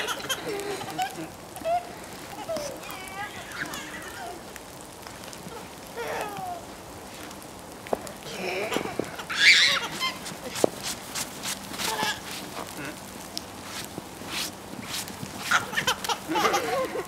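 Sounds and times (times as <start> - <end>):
child vocal sounds: 6.0 - 6.7
young child squealing: 9.3 - 10.3.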